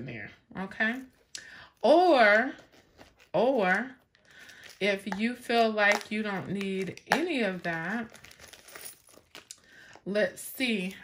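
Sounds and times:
rustling and crinkling of items: 0.8 - 11.0.

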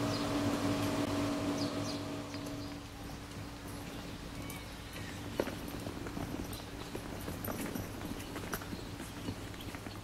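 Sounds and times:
mechanical fan hum: 0.0 - 9.5.

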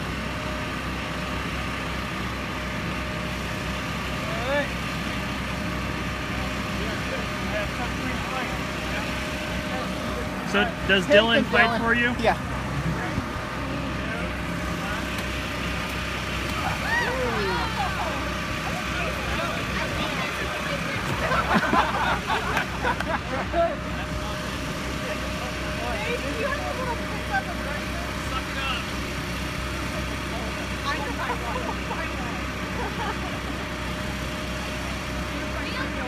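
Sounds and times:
air blower motor drone: 0.0 - 36.0
voices: 5.8 - 36.0.

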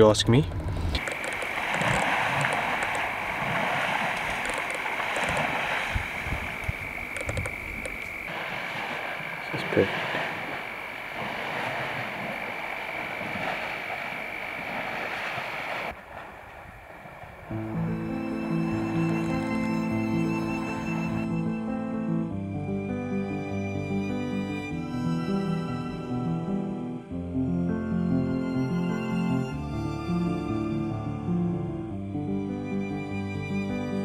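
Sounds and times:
high-pitched insect trill: 1.0 - 15.9, 17.5 - 21.7
rustling hiss: 1.0 - 21.3
background music: 17.5 - 34.0.

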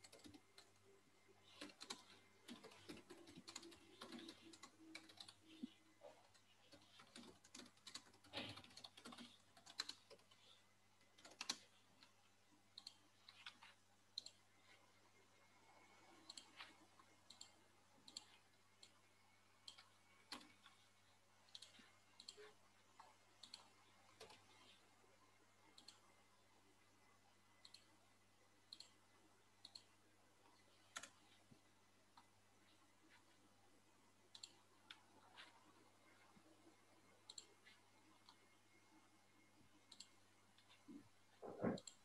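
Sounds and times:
computer mouse clicking: 0.0 - 14.8, 15.9 - 24.8, 25.6 - 26.4, 27.0 - 28.0, 28.6 - 32.3, 34.2 - 35.7, 37.2 - 38.6, 39.8 - 42.0
faint low hum: 0.0 - 42.0.

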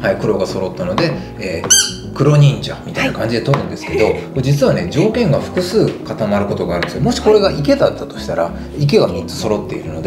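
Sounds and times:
squeaky toy squeak: 1.6 - 2.2.

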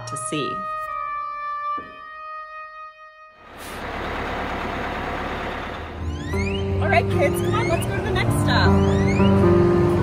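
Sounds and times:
bus engine running: 3.4 - 10.0.

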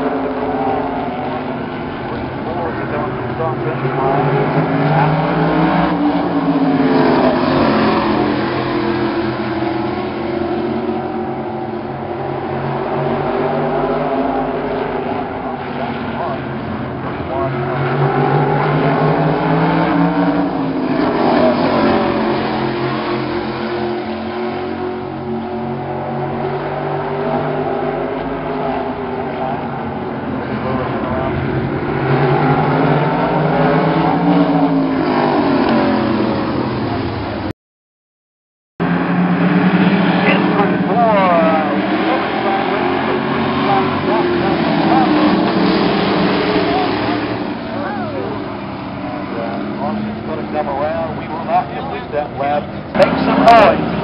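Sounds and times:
race cars passing: 0.0 - 37.5, 38.8 - 54.0.

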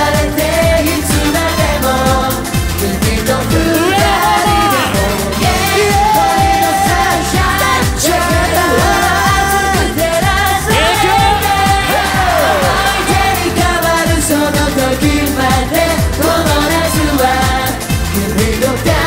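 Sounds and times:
people singing into microphones: 0.0 - 19.0
upbeat pop backing track: 0.0 - 19.0.

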